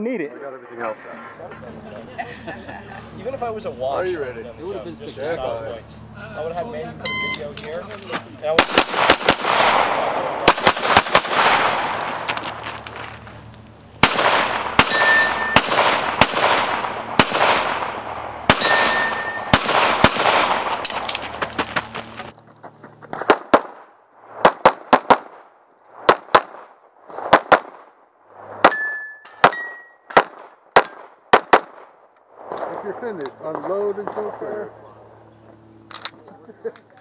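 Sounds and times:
pistol shots echoing: 8.5 - 12.6, 14.0 - 21.1, 28.6 - 31.9
metallic ring of steel targets: 14.8 - 16.2, 18.5 - 19.6, 28.6 - 30.1.

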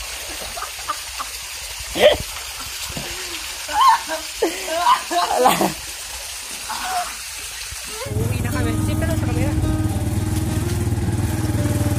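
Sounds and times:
river water rushing and splashing: 0.0 - 11.9.

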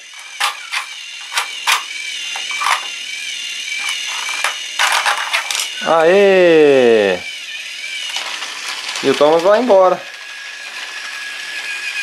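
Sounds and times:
plastic toy clicks and clatter: 0.0 - 3.0, 3.8 - 5.7, 8.0 - 12.0
toy train motor whine: 0.0 - 12.0.

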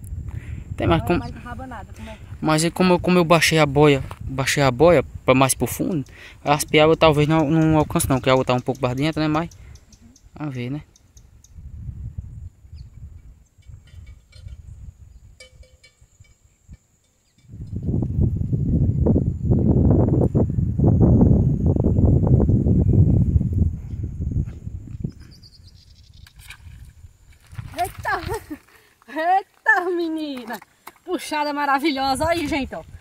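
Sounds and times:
wind buffeting microphone: 0.0 - 28.7, 31.2 - 33.0
woman's excited voice: 0.8 - 2.2, 27.7 - 32.9.

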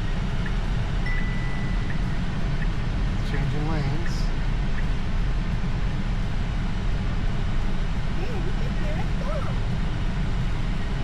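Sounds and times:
road and tyre noise in car cabin: 0.0 - 11.0
held chime tone: 1.0 - 1.9.

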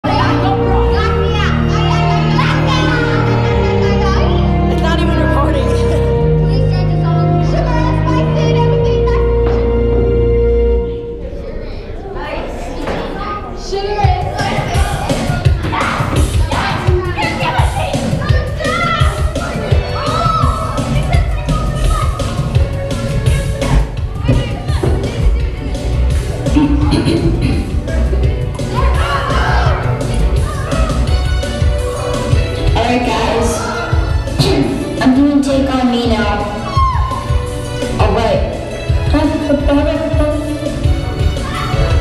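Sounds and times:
children's voices and shouts: 0.0 - 9.9, 10.8 - 37.7, 40.2 - 42.0
karaoke backing track: 1.8 - 6.3, 24.8 - 42.0
karaoke music through speakers: 4.7 - 6.2, 26.0 - 31.0.

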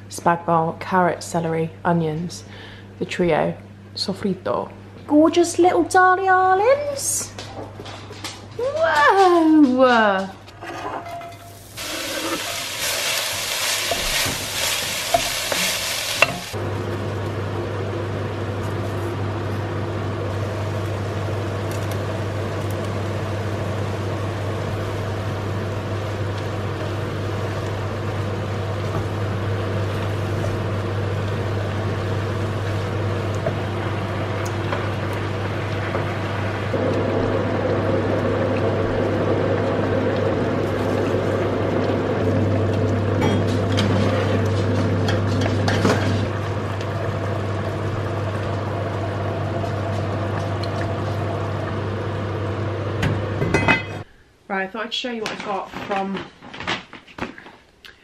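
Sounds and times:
steady low hum: 9.6 - 54.5
food sizzling in a pot: 11.2 - 16.6
wooden spoon stirring: 11.8 - 16.6.

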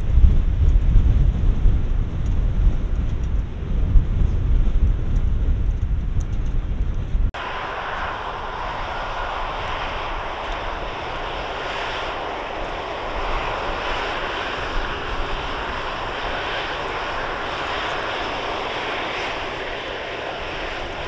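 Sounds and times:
jet engines roaring: 7.4 - 21.0.

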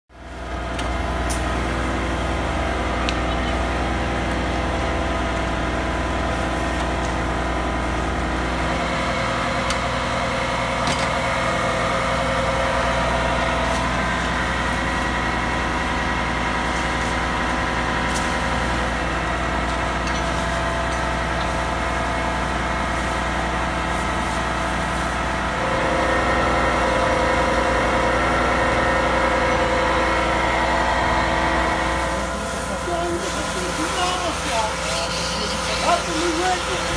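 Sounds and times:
diesel engine humming: 0.1 - 36.9.

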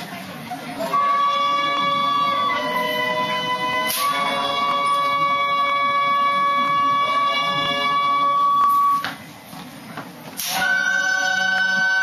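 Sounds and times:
wind instrument high note: 0.8 - 9.2, 10.4 - 12.0.

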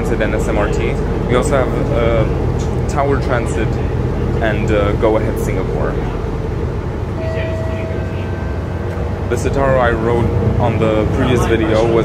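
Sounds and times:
bus engine and road rumble: 0.0 - 12.0
thin steady whine: 0.0 - 12.0.

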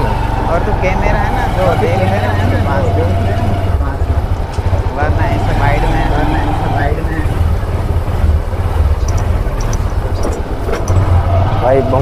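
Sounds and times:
faint voices: 0.0 - 12.0
motorbike engine rumble: 0.0 - 12.0
wind buffeting microphone: 0.0 - 12.0.

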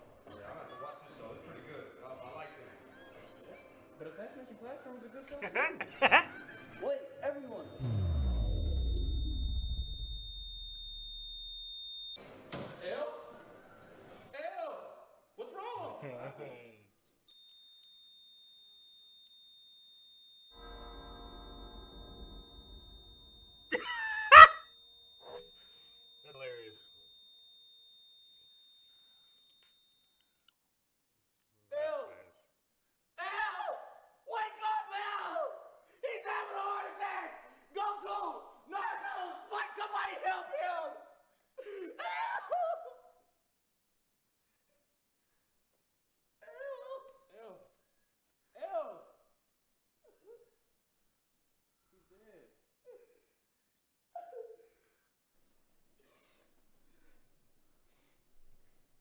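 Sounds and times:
man wailing: 5.3 - 6.3, 23.8 - 24.6
man laughing loudly: 5.3 - 6.4, 23.7 - 24.6
high-pitched ringing tone: 7.7 - 12.2, 18.2 - 30.1
deep bass tone dropping: 7.8 - 11.7.

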